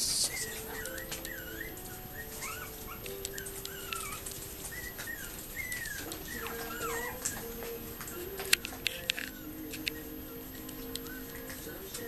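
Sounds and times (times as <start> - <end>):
faint steady background tones: 0.0 - 12.0
puppy whimpering: 0.1 - 10.2.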